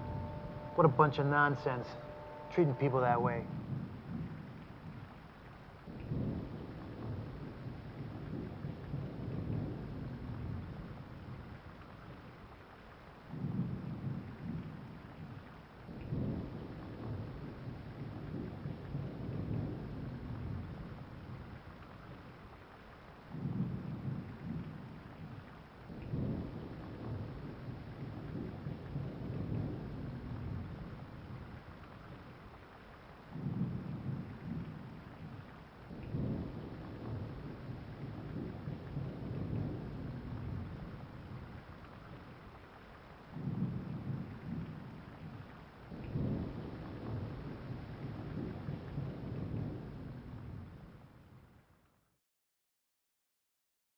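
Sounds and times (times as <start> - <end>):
thunder rumbles: 0.0 - 51.5
steady rain: 0.0 - 52.1.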